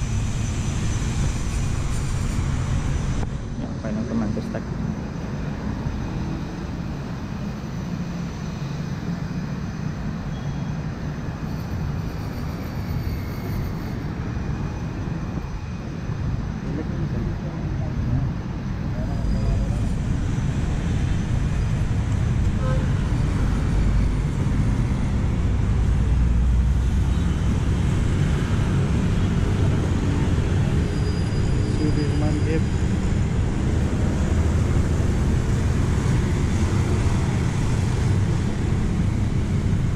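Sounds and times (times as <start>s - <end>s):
city road traffic rumble: 0.0s - 39.9s.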